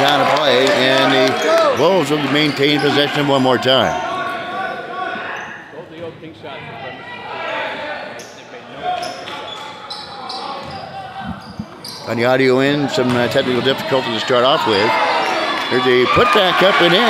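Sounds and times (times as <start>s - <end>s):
voices of players and spectators: 0.0s - 17.0s.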